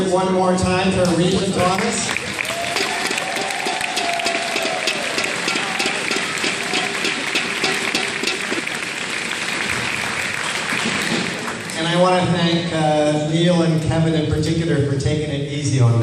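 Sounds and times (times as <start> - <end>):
audience applauding: 1.5 - 12.3.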